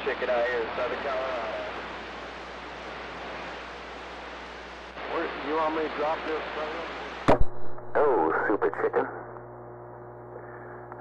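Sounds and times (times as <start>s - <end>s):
low steady hum: 0.0s - 11.0s
radio static hiss: 0.0s - 11.0s.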